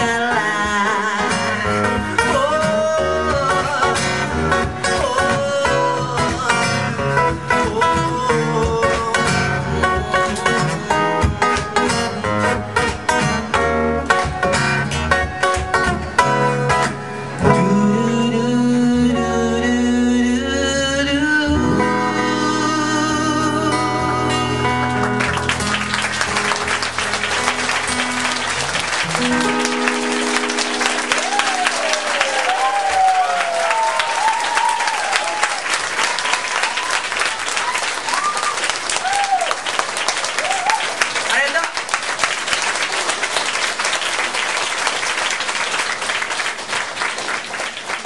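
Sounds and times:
man singing: 0:00.0 - 0:11.4, 0:16.6 - 0:24.8
acoustic guitar: 0:00.0 - 0:41.2.

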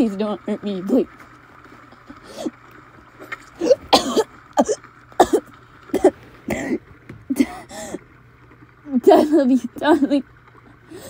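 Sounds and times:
woman coughing and gasping: 0:03.6 - 0:05.4, 0:06.0 - 0:07.8.

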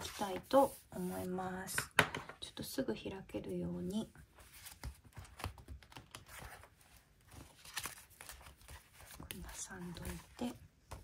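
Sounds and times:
paper pages turning: 0:04.5 - 0:10.5.

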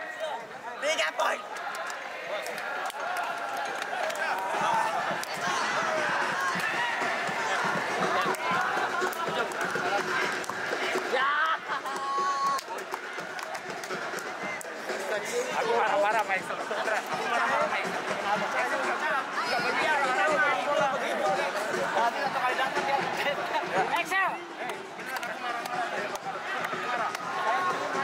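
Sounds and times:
people chattering: 0:00.0 - 0:28.0.

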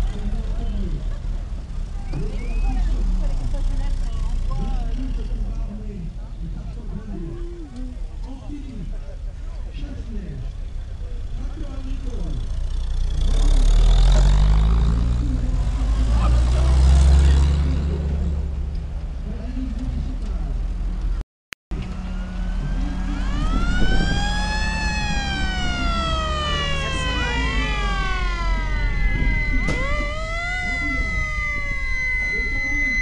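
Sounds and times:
jeep engines running low: 0:00.0 - 0:33.0
siren wailing: 0:21.8 - 0:33.0
steady high tone: 0:21.8 - 0:33.0.

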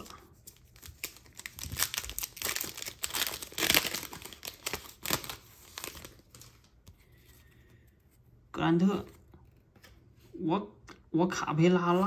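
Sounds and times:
foil wrapper crinkling: 0:00.0 - 0:06.8.

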